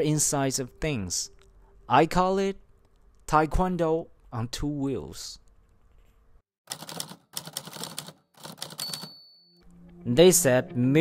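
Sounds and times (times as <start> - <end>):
typewriter keys clacking: 6.7 - 9.2
typewriter carriage bell: 6.7 - 9.6.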